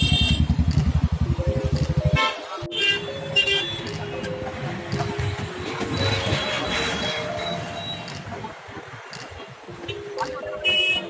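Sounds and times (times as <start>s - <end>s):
vehicle horn honks: 0.0s - 0.5s, 2.1s - 3.9s, 10.6s - 11.0s
engine thumping rapidly: 0.0s - 2.2s.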